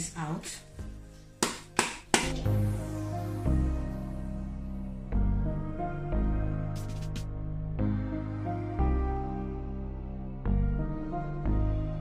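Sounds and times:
background music with low tone: 0.0 - 12.0.

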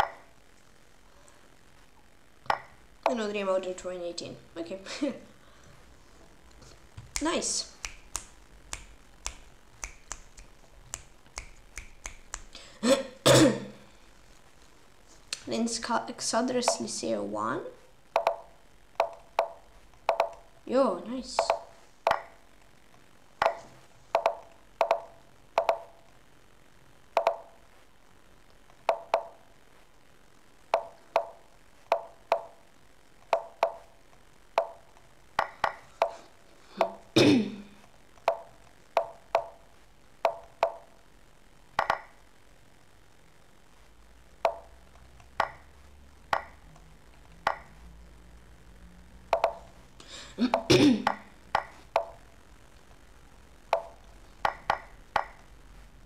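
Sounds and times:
chess move clicks: 0.0 - 0.3, 2.5 - 3.2, 7.0 - 12.6, 16.6 - 16.9, 18.1 - 20.5, 21.4 - 22.4, 23.4 - 26.0, 27.2 - 27.6, 28.5 - 29.4, 30.7 - 32.6, 33.2 - 33.9, 34.6 - 36.2, 36.8 - 37.1, 38.2 - 39.6, 40.2 - 40.9, 41.8 - 42.2, 44.4 - 44.7, 45.3 - 45.7, 46.3 - 47.8, 49.3 - 49.8, 50.5 - 52.2, 53.7 - 55.5.

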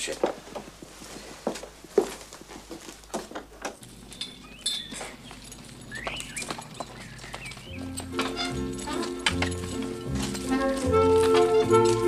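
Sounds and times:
horse hooves knocking on road: 3.0 - 12.0.

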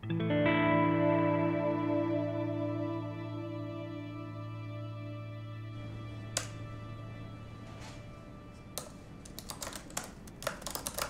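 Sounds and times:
typing on laptop keyboard: 8.8 - 11.0.

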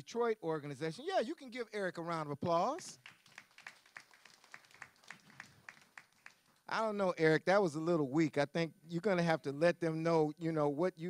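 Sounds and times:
sparse applause: 3.0 - 6.8.

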